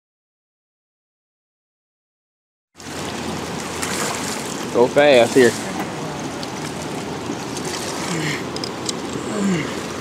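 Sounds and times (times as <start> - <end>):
river water splashing and rushing: 2.8 - 10.0.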